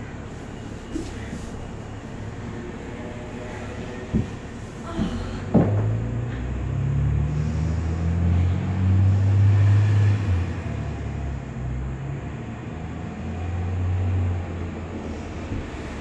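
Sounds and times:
low drone changing pitch: 5.8 - 12.2.

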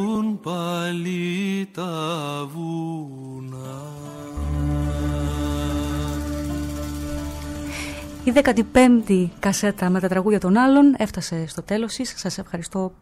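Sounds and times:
person singing with vibrato: 0.0 - 8.8
quiet accompaniment: 0.0 - 12.9
low held chord: 1.8 - 10.0.

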